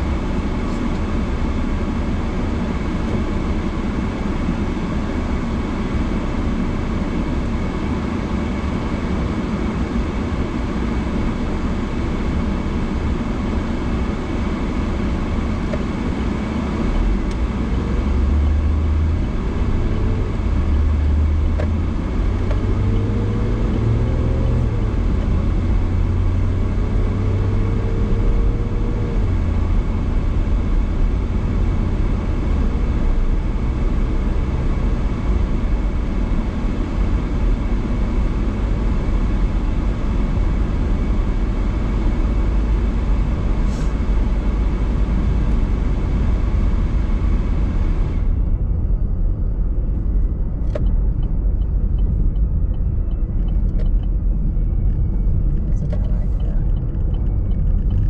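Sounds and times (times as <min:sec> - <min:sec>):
car engine shifting gears: 0:00.0 - 0:58.0.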